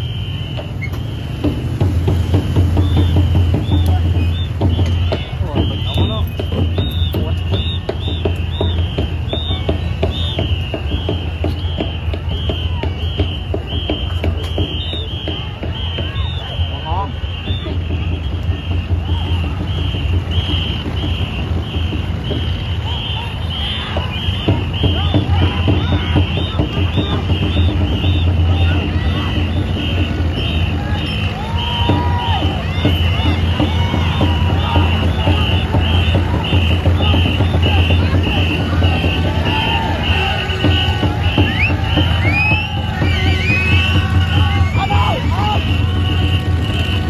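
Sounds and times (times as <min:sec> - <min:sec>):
crowd shouting and cheering: 0:00.0 - 0:47.0
rhythmic high whistle pulse: 0:00.0 - 0:47.0.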